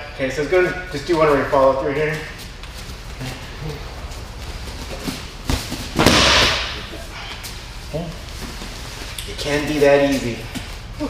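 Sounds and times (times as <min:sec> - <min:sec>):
body thudding onto mat: 0:04.9 - 0:07.0
sharp smack on mat: 0:06.0 - 0:06.8.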